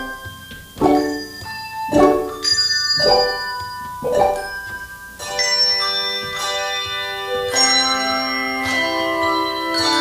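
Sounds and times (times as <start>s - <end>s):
handbell choir ringing chords: 0.0s - 10.0s.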